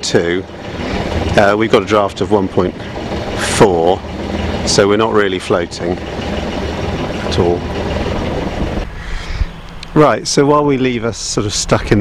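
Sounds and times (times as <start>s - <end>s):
steady hum: 0.0s - 9.9s
boat engine running: 0.0s - 10.8s.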